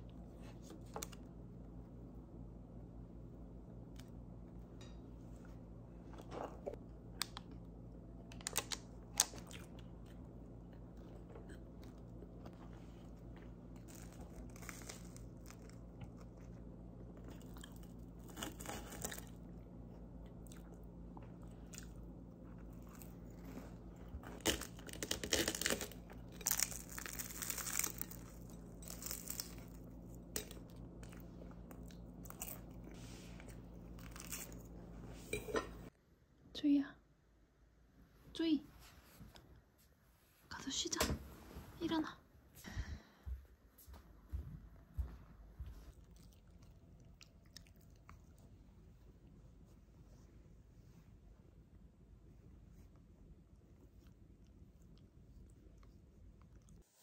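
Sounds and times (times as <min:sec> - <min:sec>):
low steady hum: 0:00.0 - 0:57.0
chewing crunchy bread: 0:08.4 - 0:35.0, 0:45.8 - 0:49.4, 0:53.6 - 0:57.0.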